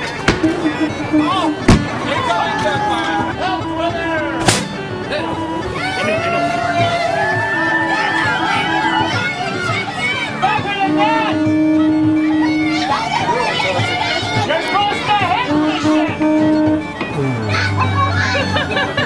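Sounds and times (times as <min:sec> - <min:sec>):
babble of voices: 0:00.0 - 0:19.0
music with held droning notes: 0:00.0 - 0:19.0.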